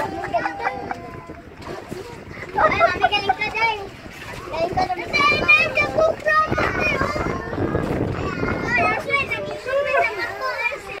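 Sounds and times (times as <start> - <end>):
children calling and chattering: 0.0 - 11.0.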